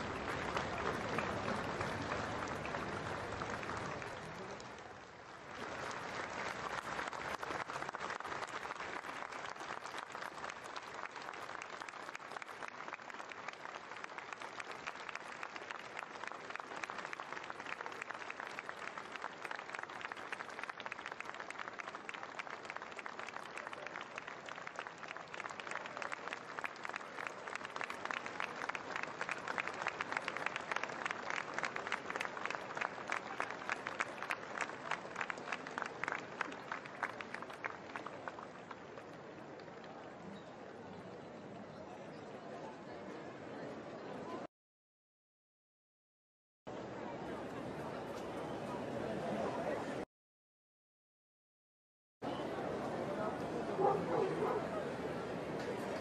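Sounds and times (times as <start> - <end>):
crowd applauding: 0.0 - 40.4, 53.1 - 56.0.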